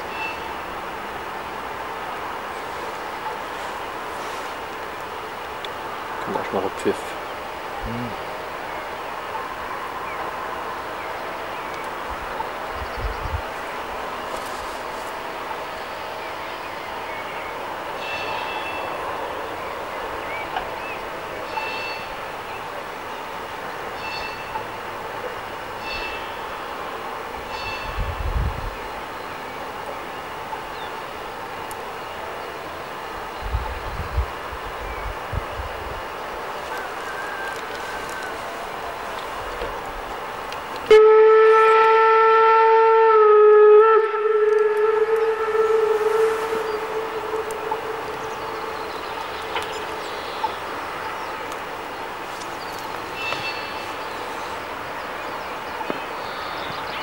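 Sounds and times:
steam locomotive hissing: 44.2 - 55.6.

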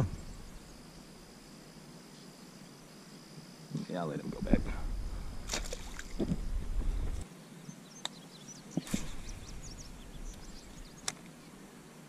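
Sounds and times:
high-pitched insect drone: 0.0 - 7.2, 8.9 - 11.5.

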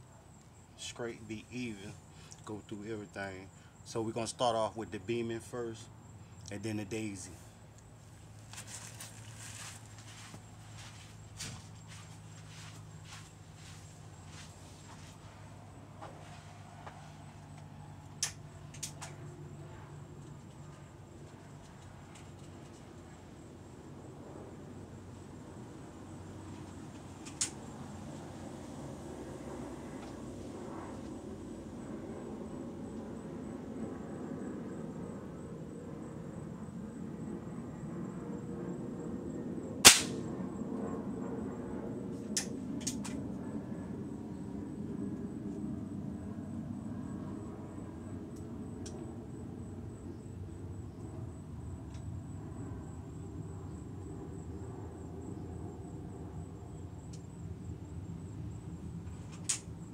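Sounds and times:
air gun shot crack: 39.8 - 40.3.

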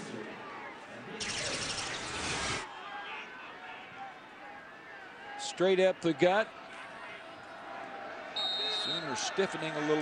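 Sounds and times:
low stadium crowd: 0.0 - 1.3, 2.2 - 10.0.

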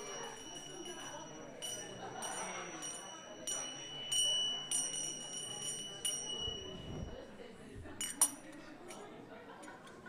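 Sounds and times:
small metal bell ringing: 0.0 - 7.3
murmur of voices: 0.0 - 10.0.

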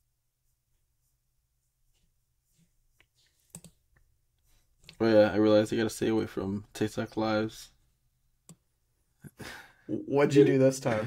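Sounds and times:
person speaking: 9.9 - 11.0.

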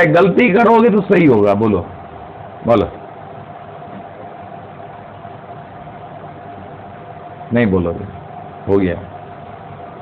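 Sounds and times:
faint constant tone: 0.0 - 10.0
mechanical hum: 0.0 - 10.0.

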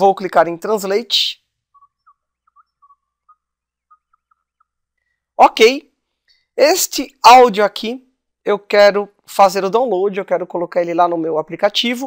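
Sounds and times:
droid beeps and whistles: 1.7 - 4.8.

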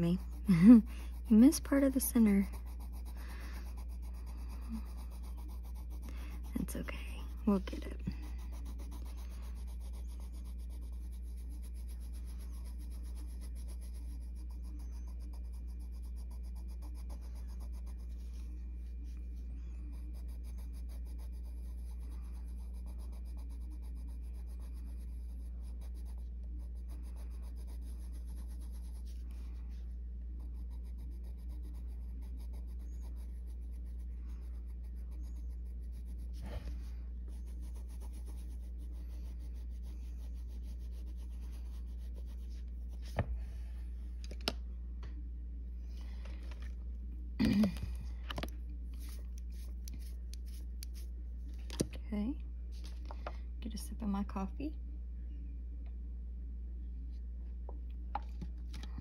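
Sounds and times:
pencil scratching on paper: 0.0 - 43.3, 48.3 - 51.1
low hum: 0.0 - 59.0.

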